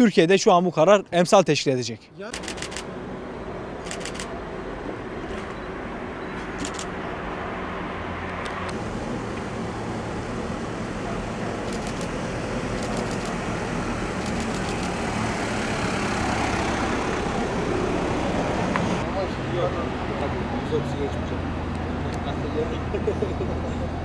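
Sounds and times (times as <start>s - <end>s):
passing cars: 2.4s - 24.0s.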